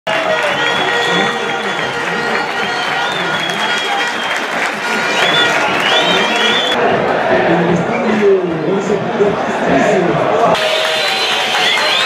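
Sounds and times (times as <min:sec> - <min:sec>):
shrill whistles: 0:00.1 - 0:06.8, 0:10.6 - 0:12.0
stadium crowd cheering: 0:00.1 - 0:12.0.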